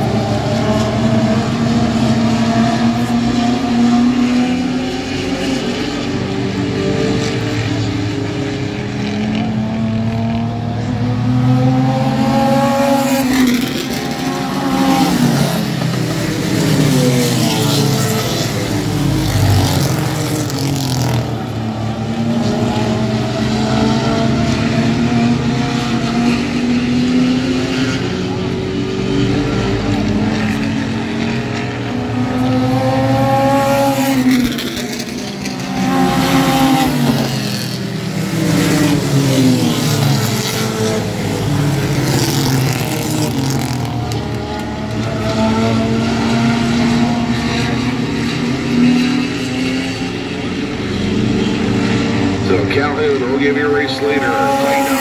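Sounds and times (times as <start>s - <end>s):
race car engines passing by: 0.0s - 55.0s.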